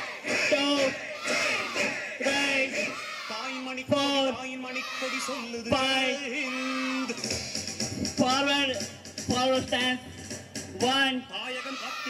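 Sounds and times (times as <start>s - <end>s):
children shouting in unison: 1.1s - 2.0s, 2.8s - 3.6s, 4.7s - 5.5s, 6.4s - 7.1s, 11.5s - 12.0s.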